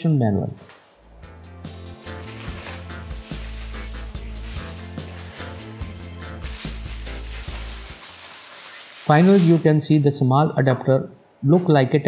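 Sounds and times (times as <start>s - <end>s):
background music with bass line: 1.1s - 8.4s
bubble wrap crinkling: 1.7s - 9.8s.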